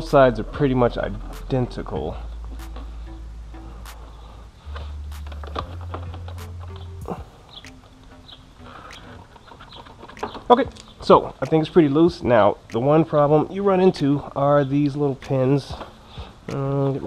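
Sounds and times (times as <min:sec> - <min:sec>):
low bass background music: 0:00.0 - 0:17.0.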